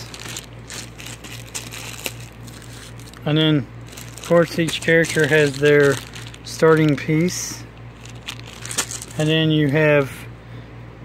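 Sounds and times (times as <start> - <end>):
plastic bag crinkling: 0.0 - 10.0
low steady hum: 0.0 - 11.0.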